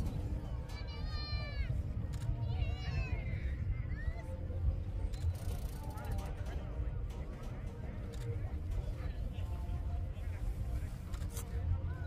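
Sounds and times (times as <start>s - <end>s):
low rumble: 0.0s - 5.3s.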